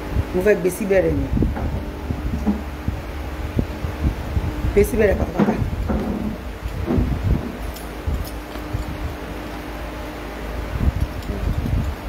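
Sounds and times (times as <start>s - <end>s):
steady hum: 0.0s - 12.0s
microphone handling rumble: 0.1s - 9.3s, 10.6s - 12.0s.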